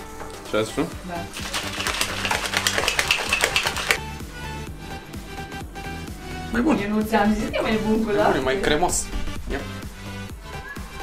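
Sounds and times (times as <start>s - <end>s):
shaker bottle rattling: 1.3s - 4.0s.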